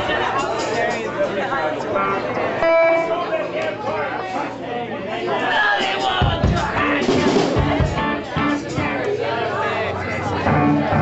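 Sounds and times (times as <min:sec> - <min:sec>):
crowd chatter: 0:00.0 - 0:11.0
electric guitar note: 0:02.6 - 0:03.2
low instrument notes and thumps: 0:06.2 - 0:09.1, 0:10.2 - 0:11.0.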